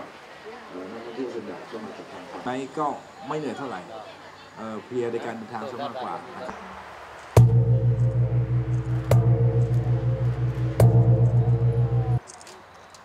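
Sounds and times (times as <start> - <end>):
gong strikes ringing: 7.4 - 12.2.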